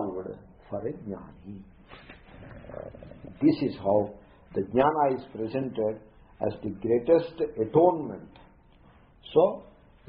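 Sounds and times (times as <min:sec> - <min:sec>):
low throaty rasp: 0:02.0 - 0:03.7.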